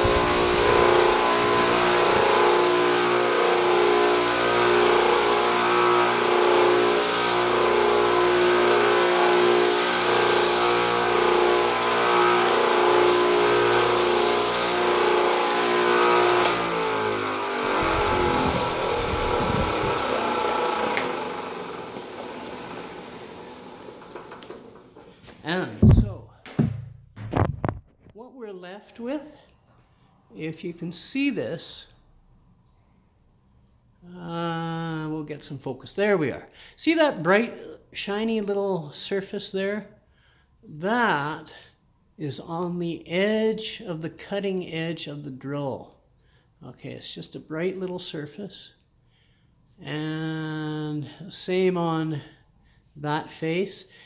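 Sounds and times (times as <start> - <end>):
motor winding down: 0.0 - 24.8
belt sander running: 0.0 - 25.1
grinding hiss of metal on belt: 17.7 - 22.0
knocks and handling sounds: 24.1 - 28.2.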